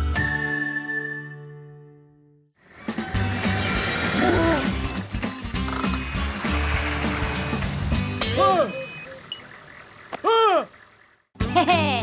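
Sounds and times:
background music: 0:00.0 - 0:08.8, 0:11.4 - 0:12.0
cartoon truck engine rumbling: 0:02.6 - 0:12.0.

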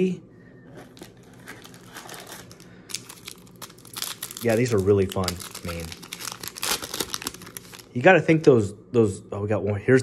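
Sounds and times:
wrapper crinkling: 0:00.9 - 0:08.1.

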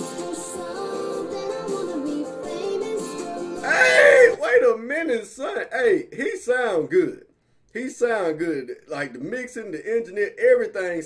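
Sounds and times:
country song with singing: 0:00.0 - 0:04.4
man exclaiming loudly: 0:03.6 - 0:07.2.

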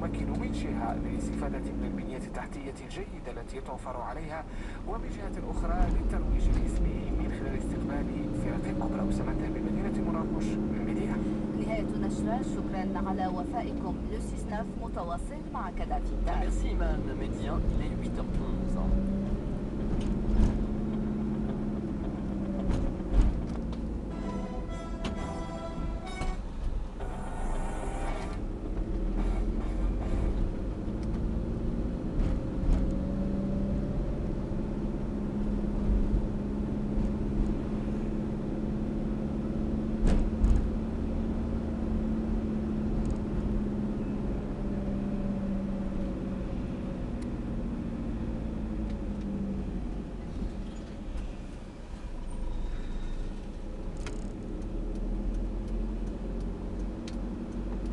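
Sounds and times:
car engine drone from inside cabin: 0:00.0 - 0:57.9
road rumble: 0:00.0 - 0:57.9.

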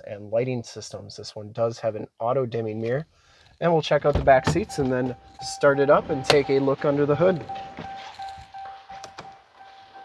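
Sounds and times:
steady electronic tone: 0:04.4 - 0:10.0.

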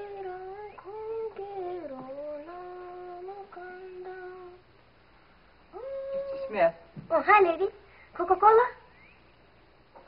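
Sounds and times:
boy singing: 0:00.0 - 0:04.7.

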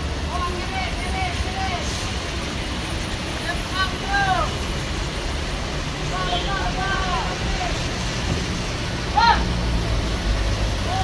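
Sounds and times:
steady rain: 0:00.0 - 0:11.0
truck engine rumble: 0:00.0 - 0:11.0
person shouting calls: 0:03.7 - 0:04.6, 0:09.1 - 0:09.5.

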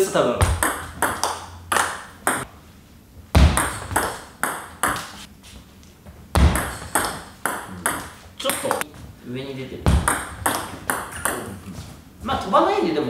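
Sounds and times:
ball bouncing on table: 0:00.4 - 0:02.5, 0:03.4 - 0:05.2, 0:06.4 - 0:08.8, 0:09.9 - 0:11.5
table tennis ball hitting bats: 0:00.4 - 0:02.5, 0:03.4 - 0:05.3, 0:06.3 - 0:08.8, 0:09.8 - 0:11.6.

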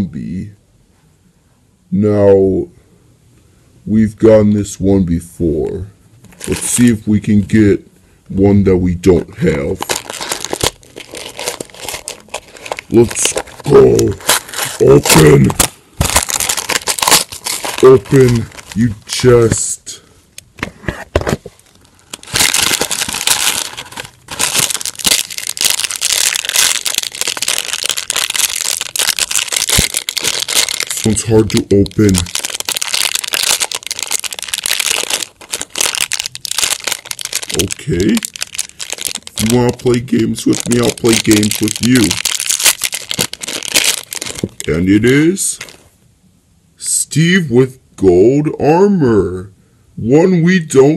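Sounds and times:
package crinkling and crackling: 0:06.2 - 0:07.0, 0:09.7 - 0:19.7, 0:21.2 - 0:45.9.

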